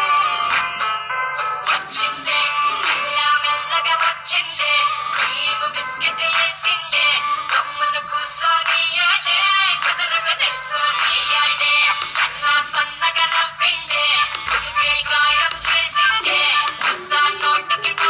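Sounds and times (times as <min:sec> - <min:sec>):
woman singing over a steady beat: 0:00.0 - 0:18.0.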